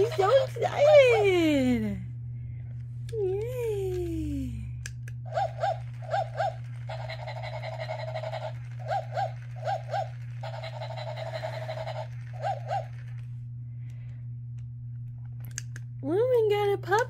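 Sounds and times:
low hum: 0:00.0 - 0:17.0
electronic toy puppy yipping: 0:05.3 - 0:13.2.

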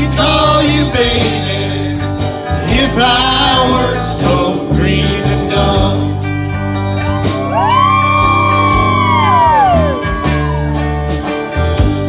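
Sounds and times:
country rock band playing: 0:00.0 - 0:12.0
steady bass line: 0:00.0 - 0:12.0.

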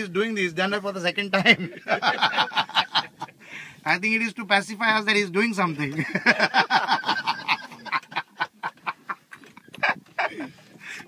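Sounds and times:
people laughing: 0:01.4 - 0:03.4, 0:05.9 - 0:10.7.

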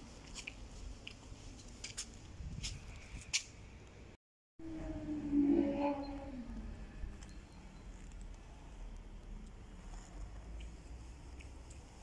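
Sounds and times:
footsteps on gritty pavement: 0:00.0 - 0:03.5.

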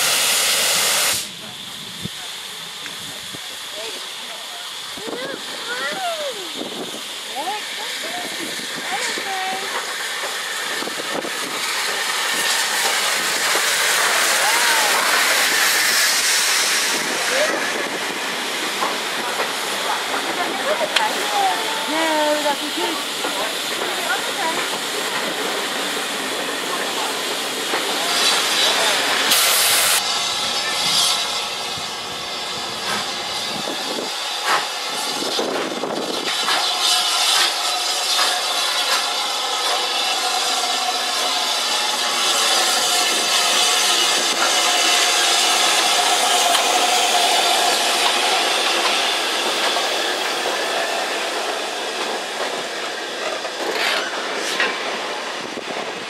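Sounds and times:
railway coaches rolling on rails: 0:00.0 - 0:56.0
steam hissing: 0:00.0 - 0:56.0
steam locomotive running past: 0:00.0 - 0:56.0.

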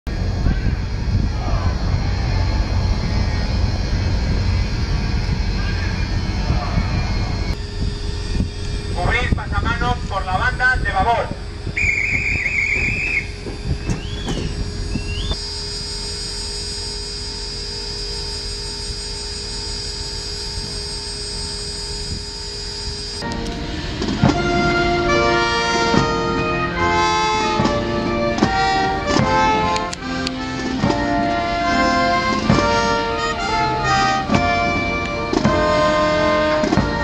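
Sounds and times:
faint steady tones and hum: 0:00.1 - 0:37.0
low rumble: 0:00.1 - 0:37.0
bosun's call piping: 0:11.8 - 0:18.7.

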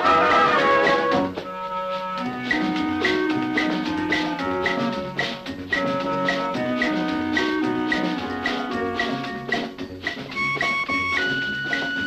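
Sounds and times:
brass passage: 0:00.0 - 0:09.7
accordion chords: 0:00.0 - 0:12.0
sharp percussion accents: 0:00.0 - 0:12.0.

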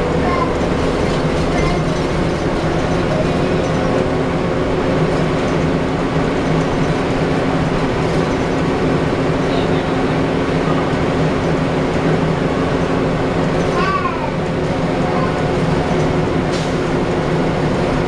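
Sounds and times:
bus diesel engine hum: 0:00.0 - 0:18.0
road noise: 0:00.0 - 0:18.0.

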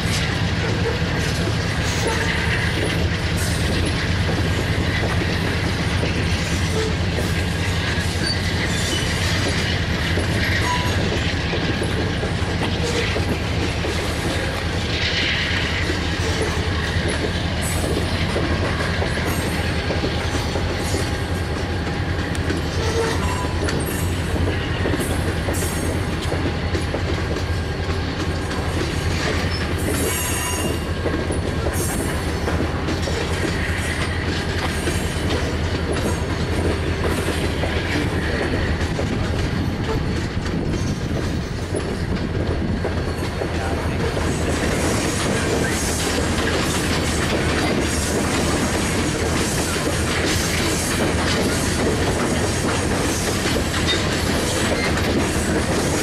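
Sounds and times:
train wheels rumbling on rail: 0:00.0 - 0:56.0
faint high wheel squeal: 0:08.1 - 0:09.6, 0:10.4 - 0:11.2, 0:22.6 - 0:24.2, 0:29.4 - 0:31.0.

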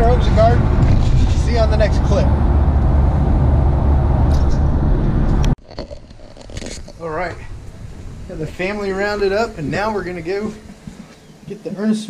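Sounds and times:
car road noise rumble: 0:00.0 - 0:11.1.

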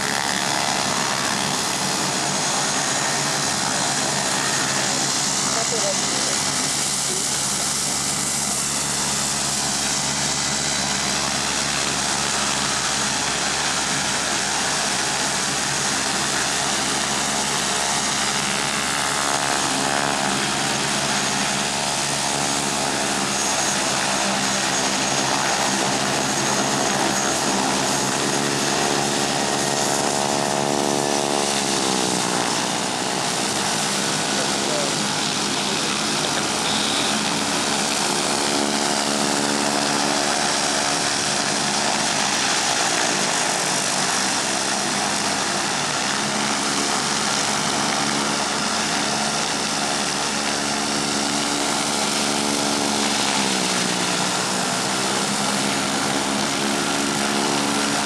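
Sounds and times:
plane engine and propeller running: 0:00.0 - 0:58.0.

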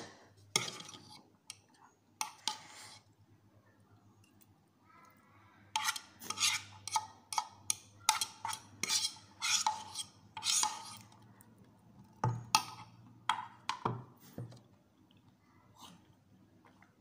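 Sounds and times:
fork scraping noodles in bowl: 0:00.5 - 0:01.6, 0:02.2 - 0:03.1, 0:05.8 - 0:11.2.

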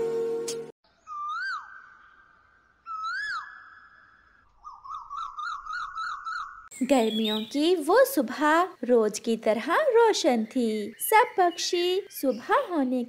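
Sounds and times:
whistled swooping bird calls: 0:00.9 - 0:07.5.

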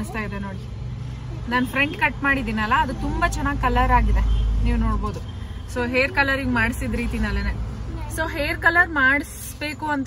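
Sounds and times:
woman talking: 0:00.0 - 0:00.7, 0:01.4 - 0:10.0.

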